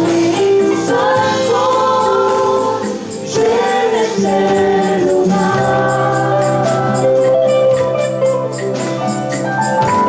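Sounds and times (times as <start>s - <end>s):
voices singing in harmony: 0.0s - 7.8s
gospel band playing: 0.0s - 10.0s.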